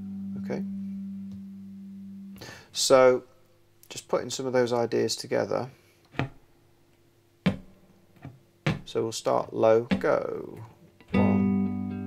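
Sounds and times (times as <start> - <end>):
guitar note picked: 0.0 - 2.6, 9.9 - 12.0.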